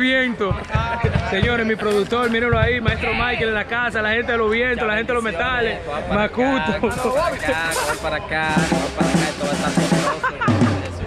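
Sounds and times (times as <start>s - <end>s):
drums and percussion groove: 0.0s - 3.6s, 6.7s - 11.0s.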